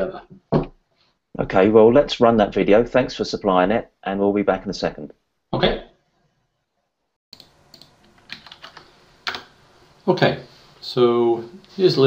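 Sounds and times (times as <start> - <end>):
computer keyboard typing: 7.4 - 9.5
faint background hiss: 7.4 - 12.0.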